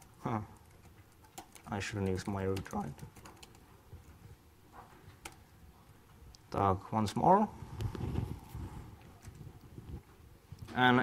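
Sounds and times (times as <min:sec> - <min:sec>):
faint keyboard typing: 0:00.0 - 0:05.6, 0:09.0 - 0:10.8.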